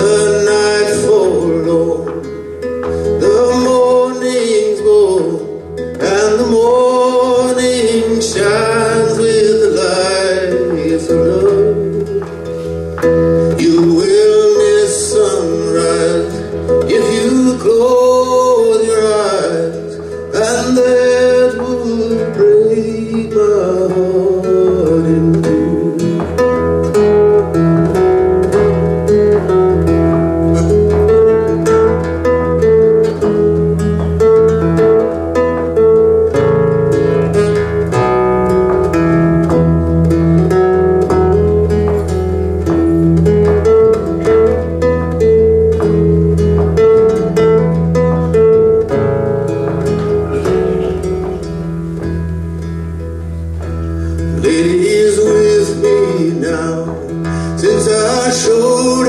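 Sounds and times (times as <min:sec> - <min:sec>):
acoustic bass line: 0:00.0 - 0:59.0
acoustic guitar plucking: 0:00.0 - 0:59.0.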